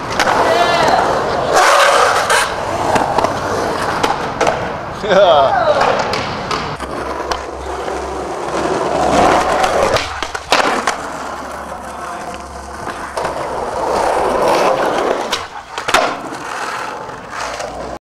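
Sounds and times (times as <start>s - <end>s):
skateboard clacks: 0.0s - 4.8s, 5.5s - 18.0s
skateboard wheels rolling on asphalt: 0.0s - 18.0s.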